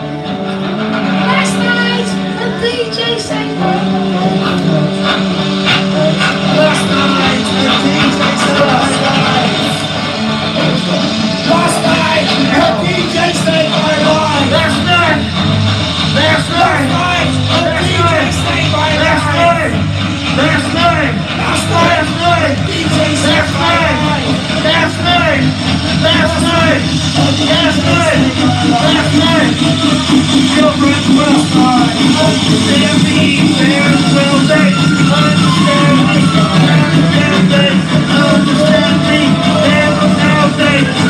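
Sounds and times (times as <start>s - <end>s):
live rock band playing: 0.0s - 41.0s.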